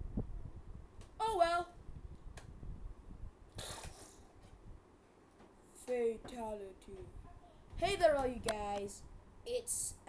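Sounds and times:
short hissing whoosh: 3.5s - 4.3s.

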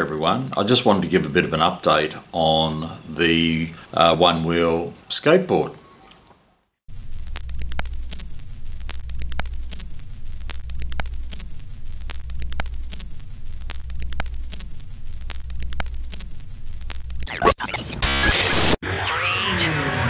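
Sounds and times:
low hum: 6.9s - 17.3s
sharp clicks: 6.9s - 18.8s
crackling static: 6.9s - 20.0s.

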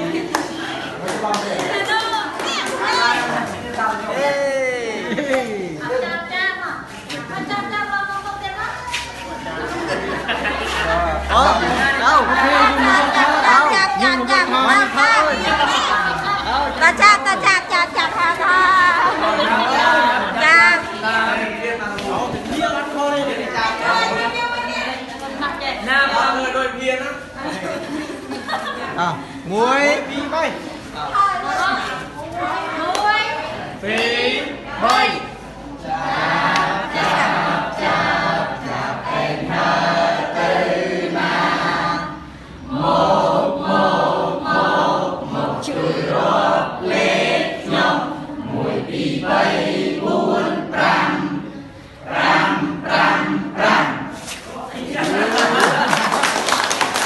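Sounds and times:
group singing a children's song: 0.0s - 4.1s, 5.1s - 26.5s, 30.8s - 57.0s
overlapping chatter of voices: 0.0s - 57.0s.

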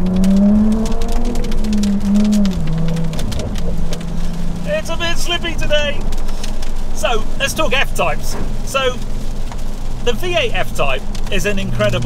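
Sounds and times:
car engine heard from cabin: 0.0s - 12.0s
raindrops ticking on car: 0.0s - 12.0s.

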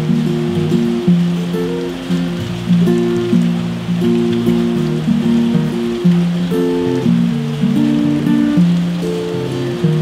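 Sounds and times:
fingerpicked acoustic guitar: 0.0s - 10.0s
rain pattering: 0.0s - 10.0s.

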